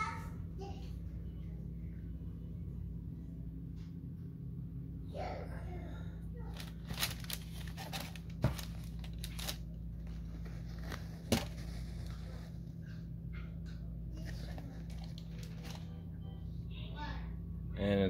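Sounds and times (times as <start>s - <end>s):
steady low hum: 0.0s - 18.0s
sneaker fabric rubbing and crinkling: 7.2s - 12.6s.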